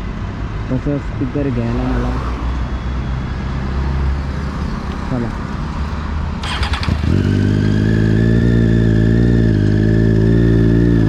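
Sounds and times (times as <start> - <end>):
road traffic passing: 0.0 - 11.0.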